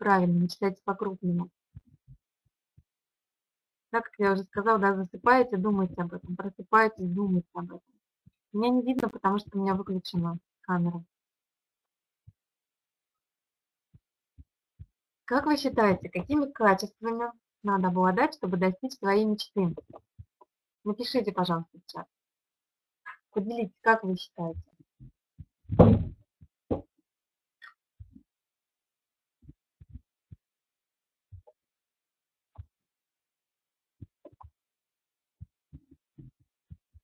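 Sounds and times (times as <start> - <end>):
soft low thumps: 13.9 - 16.5, 24.4 - 26.8, 29.4 - 30.4, 34.0 - 34.6, 35.4 - 37.0
faint low thumps: 24.4 - 26.8.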